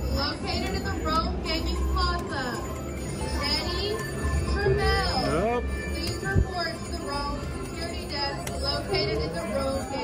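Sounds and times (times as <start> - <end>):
video poker machine sounds: 0.0 - 10.0
voices: 0.0 - 10.0.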